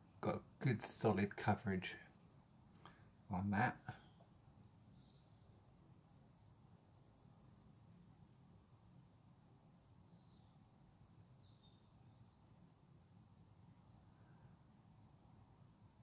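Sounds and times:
low room hum: 0:00.0 - 0:16.0
faint high bird chirps: 0:03.7 - 0:05.6, 0:06.8 - 0:08.8, 0:10.1 - 0:12.4.

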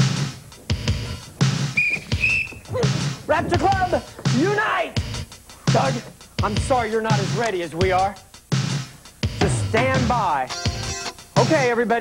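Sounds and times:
backing music with drum beat: 0:00.0 - 0:12.0
high whistle-like tones: 0:01.7 - 0:02.8.

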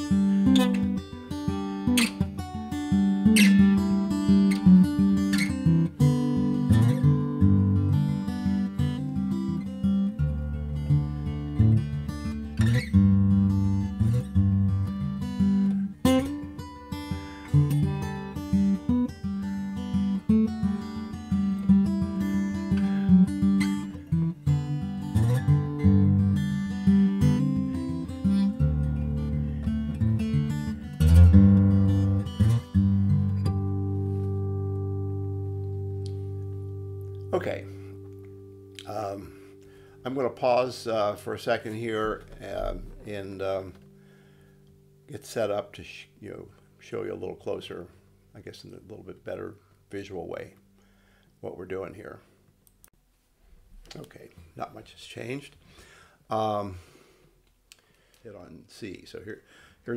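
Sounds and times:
acoustic guitar playing blues: 0:00.0 - 0:47.8.

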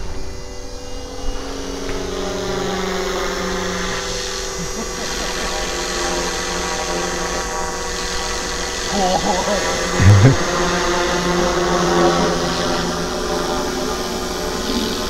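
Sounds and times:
rc helicopter whine: 0:00.0 - 0:15.0.

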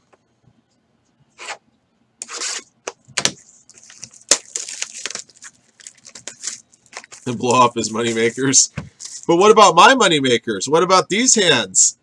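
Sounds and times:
plastic shrink wrap tearing: 0:03.7 - 0:08.4.

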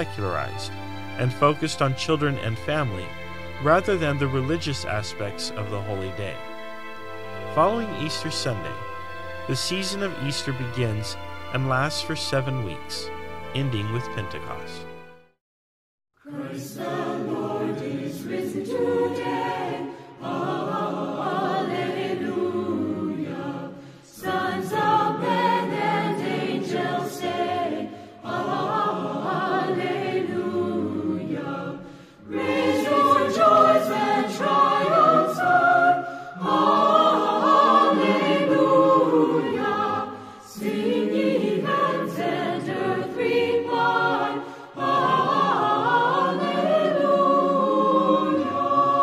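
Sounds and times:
choir singing: 0:00.0 - 0:15.1, 0:16.2 - 0:49.0.

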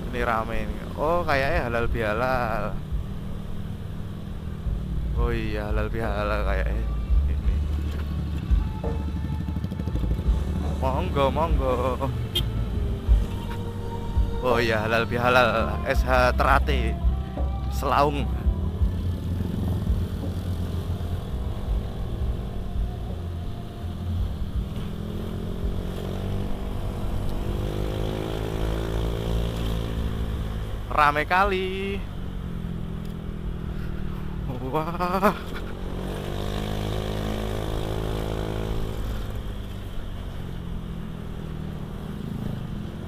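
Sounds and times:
road and wind rumble: 0:00.0 - 0:43.0
music playing: 0:05.3 - 0:29.0
scooter engine running: 0:07.2 - 0:14.4, 0:18.4 - 0:43.0.

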